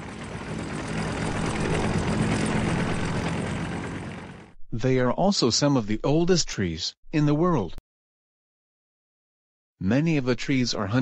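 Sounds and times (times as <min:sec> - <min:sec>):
propeller airplane engine drone: 0:00.0 - 0:04.6.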